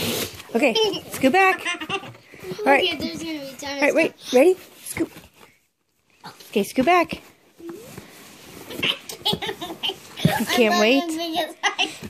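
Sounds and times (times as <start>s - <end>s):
girls giggling: 8.7s - 12.0s.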